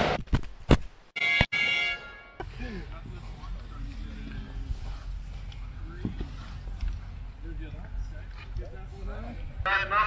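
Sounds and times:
steady low rumble: 2.4 - 9.9.

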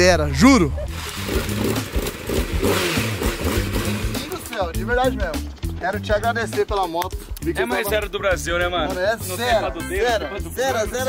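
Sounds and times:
motorcycle engine running: 0.8 - 5.9.

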